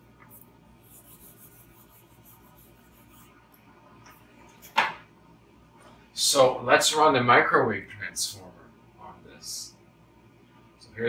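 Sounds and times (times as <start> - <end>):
eraser rubbing whiteboard: 0.3 - 3.4.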